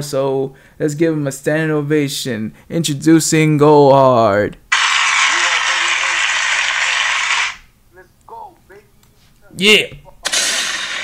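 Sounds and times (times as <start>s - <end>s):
crowd applause and cheering: 4.8s - 7.6s.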